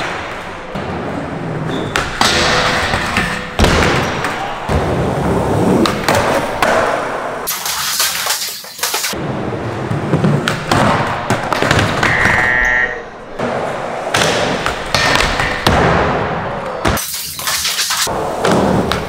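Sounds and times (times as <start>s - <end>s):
skateboards rolling on wood: 4.4s - 7.5s, 8.9s - 12.0s.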